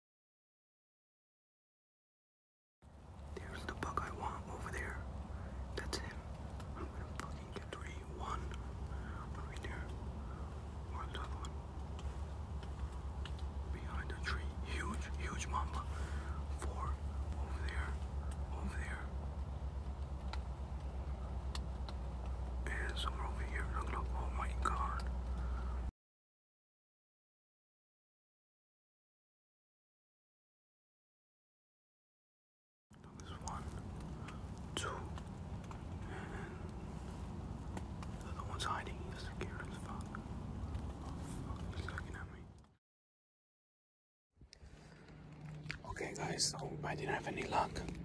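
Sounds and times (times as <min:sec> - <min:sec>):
steady low rumble: 0:02.8 - 0:25.9, 0:33.0 - 0:42.8, 0:44.4 - 0:48.0
man whispering: 0:03.3 - 0:19.5, 0:22.6 - 0:25.9, 0:33.0 - 0:37.2, 0:38.1 - 0:42.6, 0:45.7 - 0:48.0
light clicks: 0:04.7 - 0:25.9, 0:33.0 - 0:42.7.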